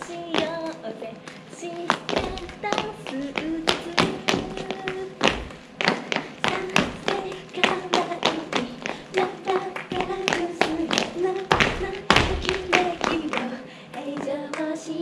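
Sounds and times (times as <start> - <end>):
women singing: 0.0 - 15.0
boots stomping on wooden stage: 9.9 - 13.3.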